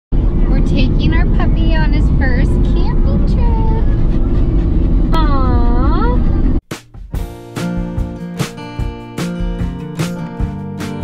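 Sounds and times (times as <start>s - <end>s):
high-pitched vocal sounds: 5.2s - 6.6s.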